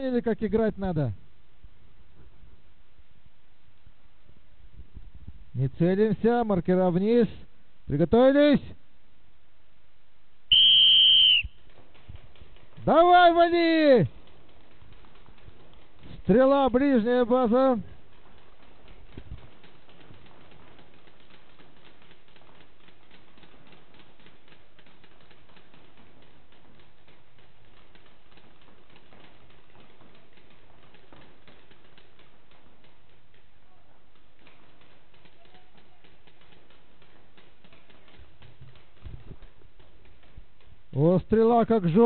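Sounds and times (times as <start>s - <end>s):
paintball markers firing: 10.5s - 42.0s.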